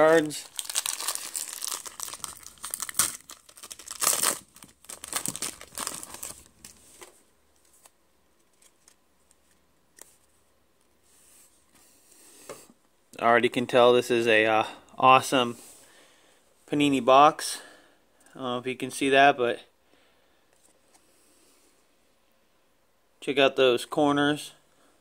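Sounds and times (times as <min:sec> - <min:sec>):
foil wrapper tearing and crinkling: 0:00.4 - 0:06.7
cards sliding with faint rustles: 0:06.2 - 0:12.7.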